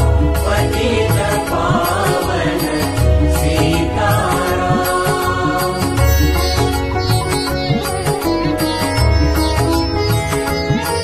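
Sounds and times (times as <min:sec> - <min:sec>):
instrumental devotional backing track: 0:00.0 - 0:11.0.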